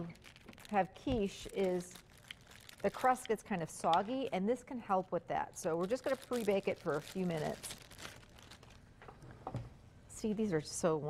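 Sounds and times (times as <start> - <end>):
pie crust wrapper rustling: 0.0 - 3.5, 5.6 - 8.9.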